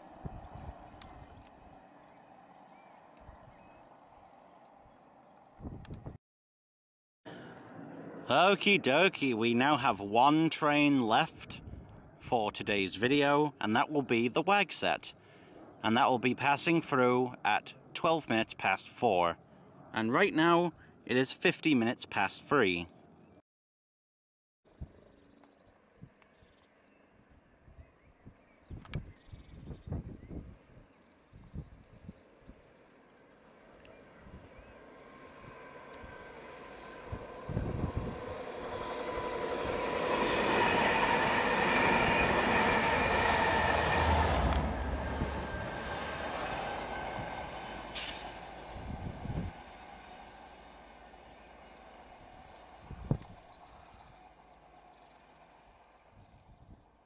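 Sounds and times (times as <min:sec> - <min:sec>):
diesel train passing: 0:00.0 - 0:05.4, 0:32.7 - 0:56.2.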